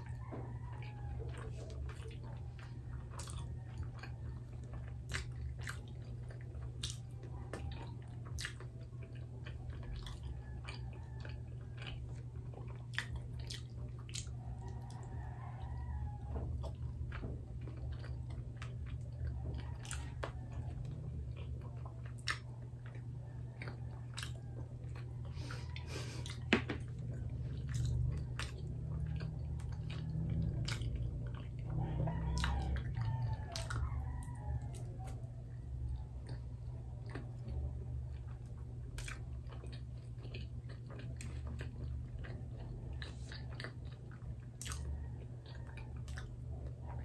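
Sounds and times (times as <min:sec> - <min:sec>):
chewing sticky rice cakes: 0:00.0 - 0:47.0
steady low hum: 0:00.0 - 0:47.0.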